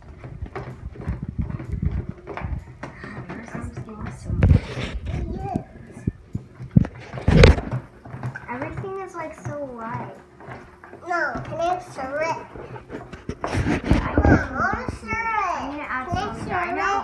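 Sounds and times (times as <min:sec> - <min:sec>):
young children talking: 0:14.0 - 0:17.0.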